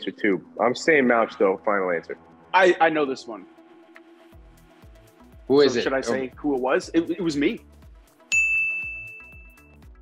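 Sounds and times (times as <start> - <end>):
background music with beat: 0.0 - 10.0
bright ding: 8.3 - 9.7.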